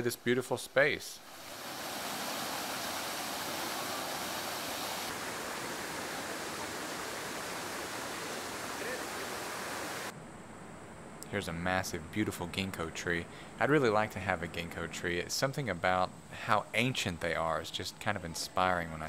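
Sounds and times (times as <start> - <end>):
fountain water splashing: 1.3 - 10.1.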